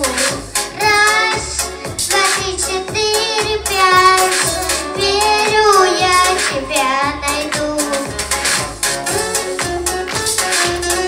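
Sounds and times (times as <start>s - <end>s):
girl singing into microphone: 0.0s - 8.2s
pop backing track with beat: 0.0s - 11.0s.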